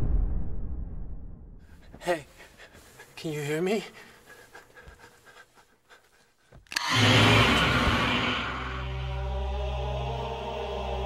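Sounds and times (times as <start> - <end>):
woman panting: 3.9 - 6.7
sharp click: 6.7 - 7.1.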